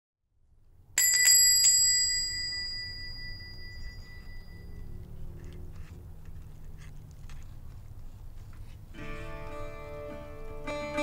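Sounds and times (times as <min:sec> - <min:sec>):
small metal door bell ringing: 0:01.0 - 0:05.0.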